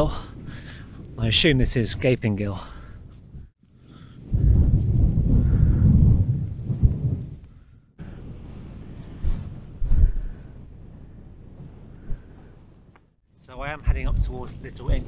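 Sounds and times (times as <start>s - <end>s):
wind buffeting microphone: 0.0s - 15.0s
low thumps: 4.3s - 7.5s.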